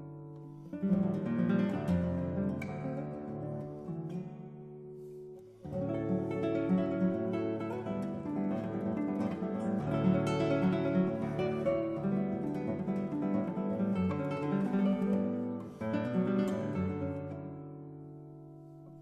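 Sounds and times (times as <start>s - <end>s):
fingerstyle classical guitar: 0.0s - 19.0s.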